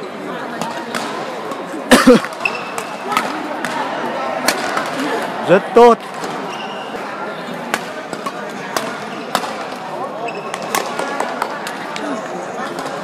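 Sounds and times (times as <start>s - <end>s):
hubbub of voices: 0.0s - 13.0s
racket hitting shuttlecock: 7.7s - 9.8s, 10.5s - 11.8s.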